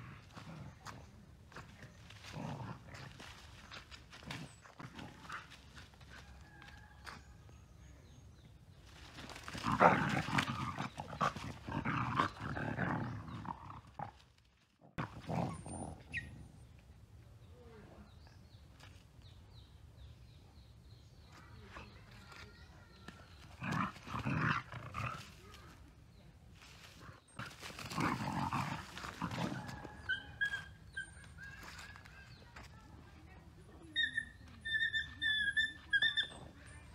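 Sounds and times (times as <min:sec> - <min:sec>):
dogs growling: 0:00.0 - 0:06.1, 0:09.4 - 0:14.3, 0:14.9 - 0:16.7, 0:23.4 - 0:25.5, 0:27.0 - 0:31.4
dog squeaks: 0:34.0 - 0:36.5.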